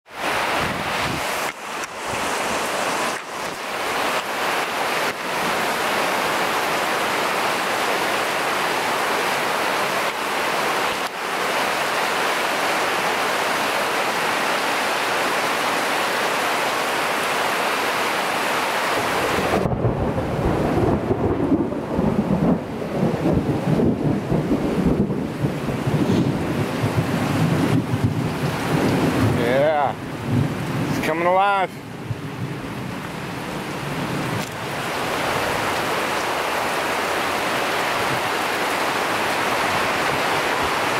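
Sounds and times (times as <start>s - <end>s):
heavy rain on foliage: 0.1s - 40.9s.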